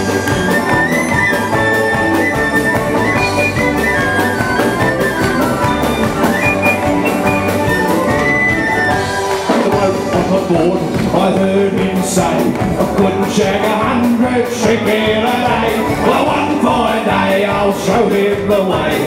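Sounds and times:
fiddle: 0.0s - 18.0s
banjo: 0.0s - 19.0s
steady drum beat: 0.0s - 19.0s.

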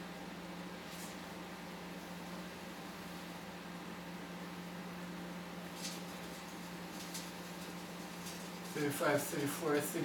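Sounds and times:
microwave oven humming: 0.0s - 10.0s.

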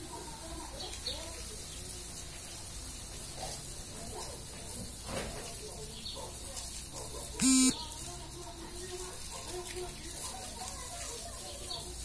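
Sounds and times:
short electronic buzzer tone: 7.4s - 7.8s.

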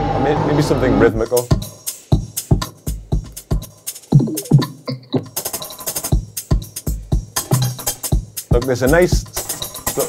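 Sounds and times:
electronic drum loop: 1.2s - 10.0s
falling pitched effect tones: 4.1s - 5.3s.

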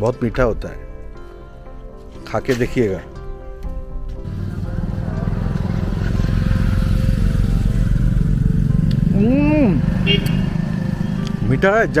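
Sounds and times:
vehicle engine rumbling: 4.1s - 12.0s.

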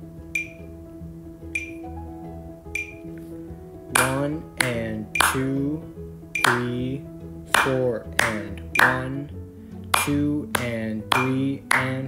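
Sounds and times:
soft music with held chords: 0.0s - 12.0s
metronome ticking: 0.3s - 0.8s, 1.5s - 2.0s, 2.7s - 3.2s, 3.9s - 12.0s.

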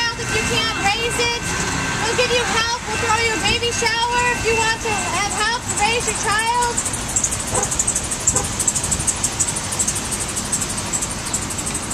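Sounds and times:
traffic noise: 0.0s - 11.9s
high-pitched insect chirping: 5.7s - 11.9s.

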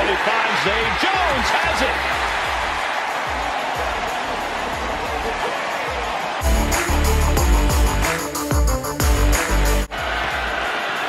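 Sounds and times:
stadium crowd noise: 0.0s - 6.5s, 9.9s - 11.0s
background music with bass thumps: 6.4s - 9.9s.

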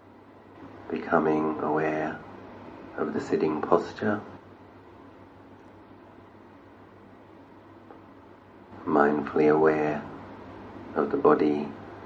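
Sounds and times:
faint room hiss: 0.0s - 12.0s
man speaking calmly: 0.9s - 2.3s, 2.9s - 4.4s, 8.8s - 10.2s, 10.9s - 11.8s.

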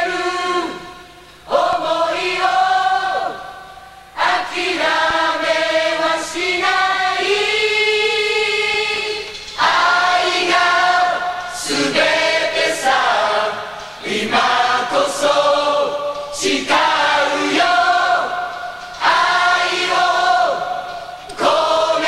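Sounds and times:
chorus singing held notes: 0.0s - 22.0s.

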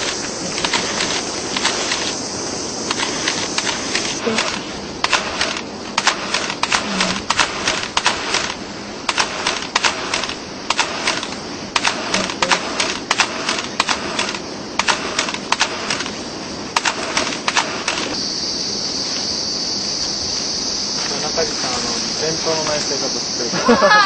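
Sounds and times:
steady high hiss: 0.0s - 24.0s.

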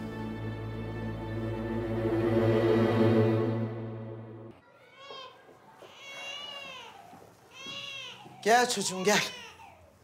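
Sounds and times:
sustained dramatic score: 0.0s - 4.6s.

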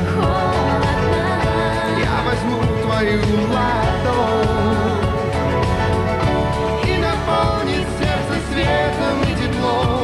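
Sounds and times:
man and woman singing: 0.0s - 5.7s, 6.3s - 10.0s
loud band accompaniment: 0.0s - 10.0s.

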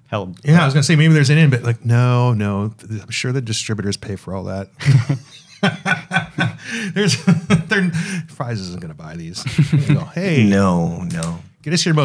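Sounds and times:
men chuckling: 4.8s - 8.4s, 9.4s - 10.2s.

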